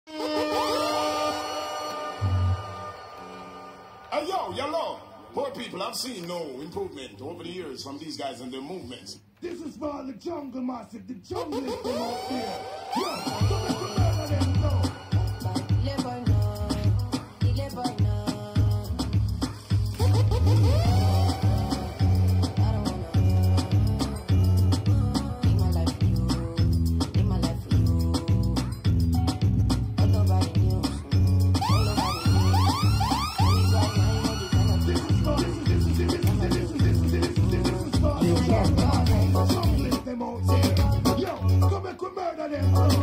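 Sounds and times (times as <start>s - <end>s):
electronic dance music: 0.0s - 6.9s, 11.3s - 43.0s
dj mix with deep bass beat: 9.2s - 43.0s
swooping sound effect: 11.7s - 15.5s, 31.6s - 37.6s.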